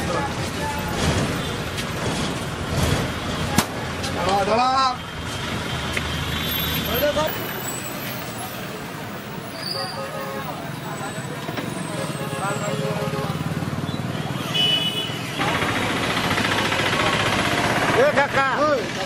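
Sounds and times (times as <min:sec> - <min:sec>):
roadside traffic: 0:00.0 - 0:19.0.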